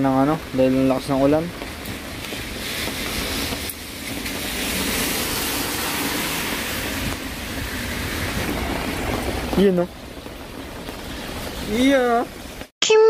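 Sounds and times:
traffic on wet road: 0.0 - 12.7.

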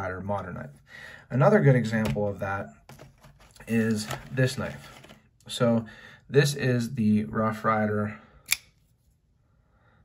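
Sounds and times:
folding knife snapping open: 8.5 - 8.7.

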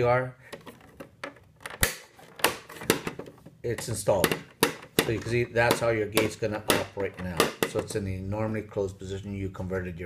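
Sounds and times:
plastic valve gate clacking: 0.5 - 8.0.

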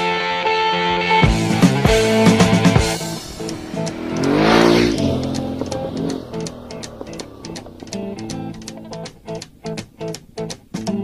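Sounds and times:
motorcycle passing at speed: 1.4 - 10.3.

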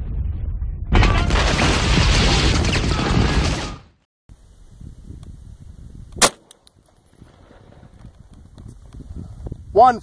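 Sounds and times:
pistol shot: 6.2 - 6.6.

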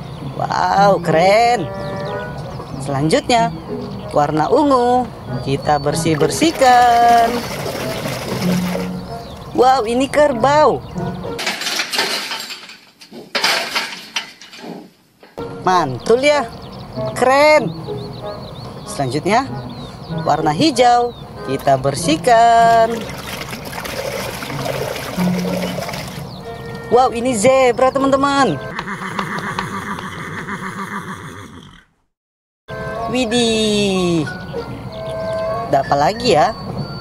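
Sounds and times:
zebra barking brays: 0.2 - 9.6, 16.5 - 26.9
steel gate panels clanging: 11.1 - 15.4.

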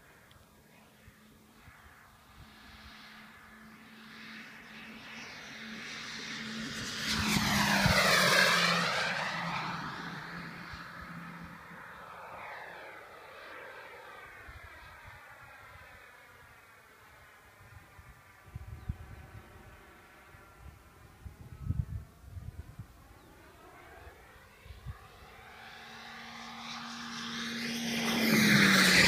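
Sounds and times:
model jet engine passing: 0.0 - 29.0.

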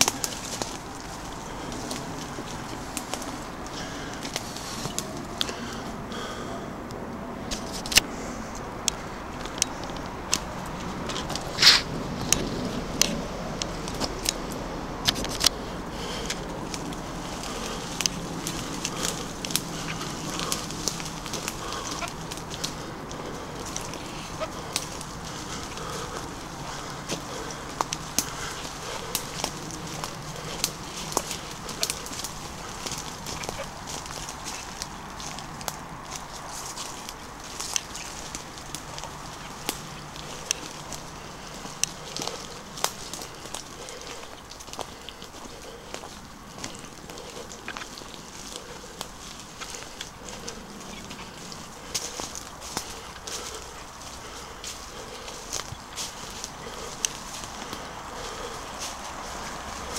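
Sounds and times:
twigs snapping: 0.0 - 6.4, 7.5 - 8.1, 8.8 - 59.9
footsteps crunching dry leaves: 0.0 - 6.6, 7.4 - 59.9
branches brushing: 0.0 - 59.9.

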